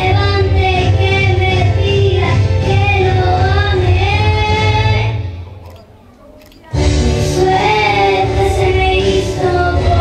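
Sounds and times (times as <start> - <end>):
girl singing into microphone: 0.0 - 5.2, 6.8 - 10.0.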